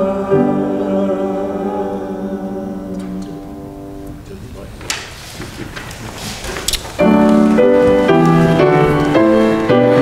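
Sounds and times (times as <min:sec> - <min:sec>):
choir holding a chord: 0:00.0 - 0:04.0
faint rustling: 0:03.0 - 0:10.0.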